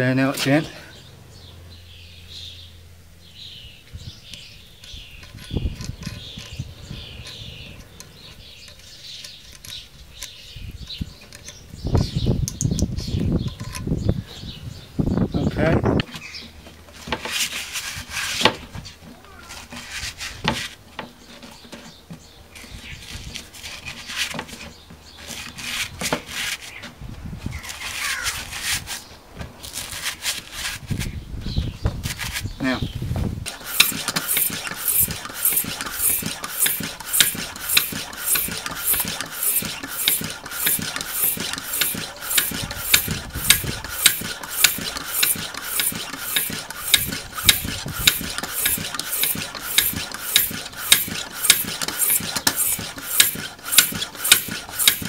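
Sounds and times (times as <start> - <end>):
tyre pump strokes: 16.2 - 31.2, 32.0 - 55.0.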